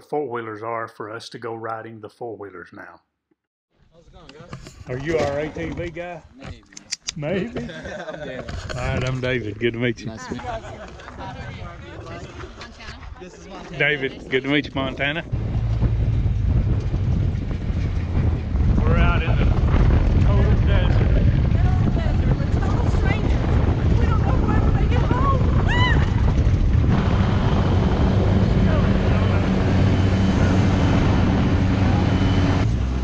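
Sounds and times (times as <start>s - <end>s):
wind buffeting microphone: 8.4s - 33.0s
vehicle engine driving: 13.8s - 33.0s
people shouting: 25.0s - 26.2s.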